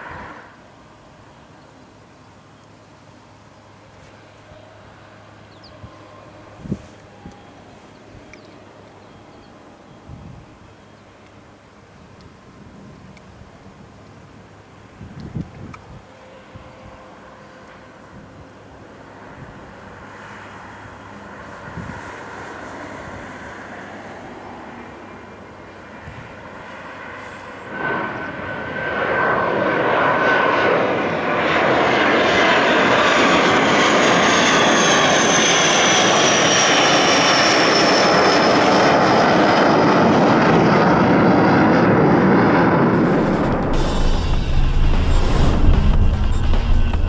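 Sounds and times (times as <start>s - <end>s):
high turbine whine: 0.0s - 47.0s
jet engines climbing overhead: 0.0s - 47.0s.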